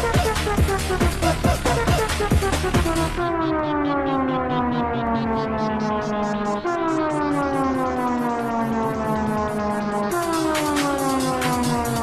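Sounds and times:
techno beat pulse: 0:00.0 - 0:12.0
siren-like falling tone: 0:01.6 - 0:12.0.

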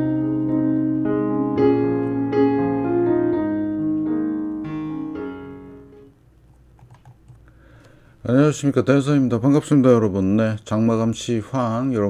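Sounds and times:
faint computer keyboard clicks: 0:06.5 - 0:08.0.

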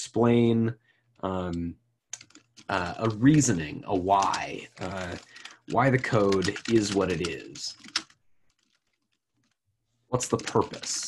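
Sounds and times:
computer keyboard keystrokes: 0:02.2 - 0:03.5, 0:04.2 - 0:09.6.

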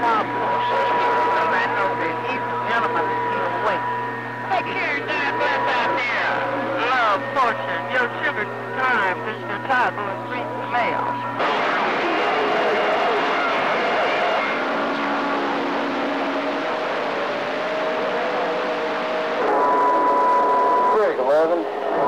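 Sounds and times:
garbled radio voices: 0:00.0 - 0:15.3
radio static: 0:00.0 - 0:19.8, 0:20.6 - 0:22.0
strong steady whistle: 0:19.4 - 0:21.2
whistling radio tones: 0:19.4 - 0:22.0.

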